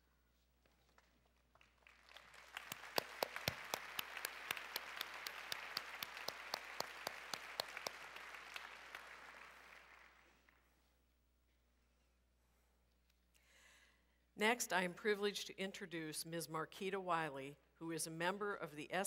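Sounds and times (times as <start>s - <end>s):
nearby person clapping: 1.0s - 10.2s
audience applauding: 1.5s - 10.4s.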